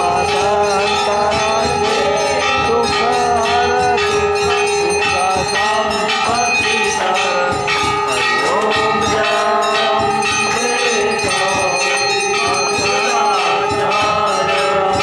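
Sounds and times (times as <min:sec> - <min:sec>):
temple bells ringing: 0:00.0 - 0:15.0
voices singing: 0:00.0 - 0:15.0.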